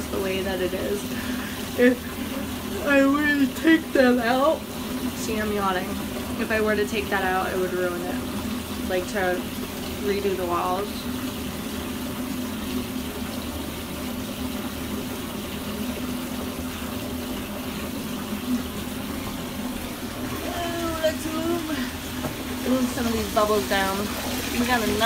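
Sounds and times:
water pouring into bathtub: 0.0 - 25.0.

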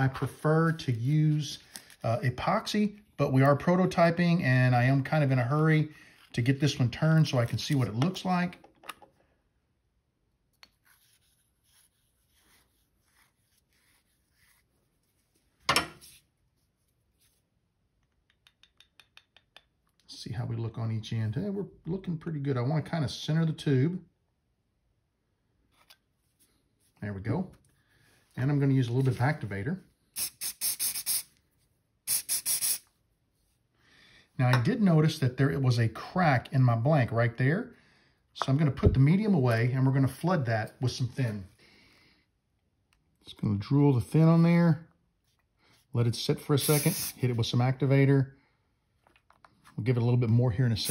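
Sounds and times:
pen tube scraping in wood: 10.7 - 15.3
spray bottle spritzes: 30.2 - 31.4, 32.1 - 32.9, 46.6 - 47.2.

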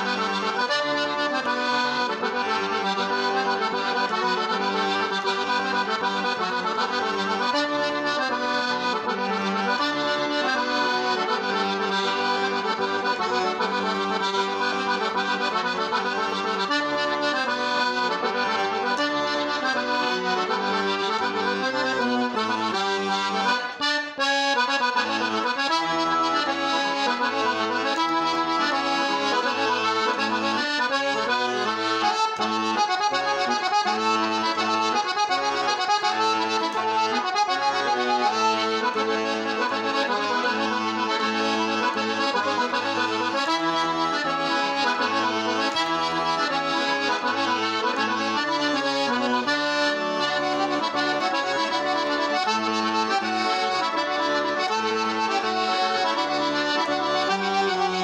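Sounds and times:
piano accordion dance tune: 0.0 - 58.0.

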